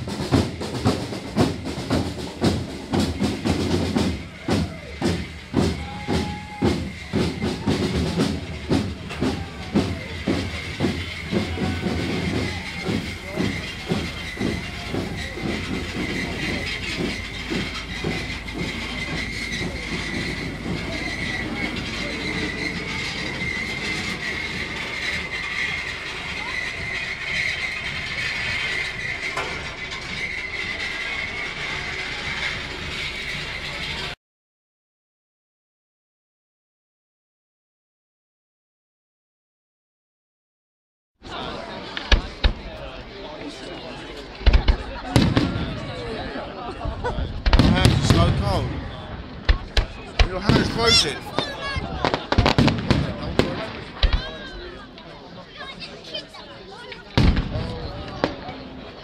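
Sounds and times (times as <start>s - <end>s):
crowd noise: 0.0s - 34.2s, 41.2s - 59.0s
street drums marching rhythm: 0.0s - 34.2s, 41.2s - 59.0s.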